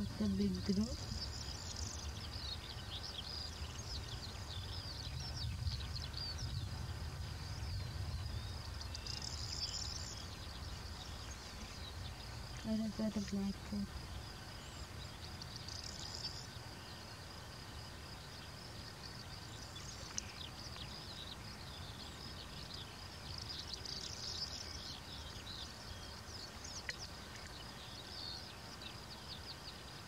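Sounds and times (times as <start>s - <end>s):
small birds chirping: 0.0s - 30.0s.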